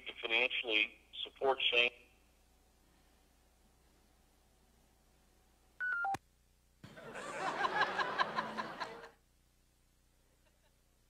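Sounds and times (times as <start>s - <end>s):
phone beeps stepping down: 5.8s - 6.2s
voices or laughter: 6.8s - 9.2s.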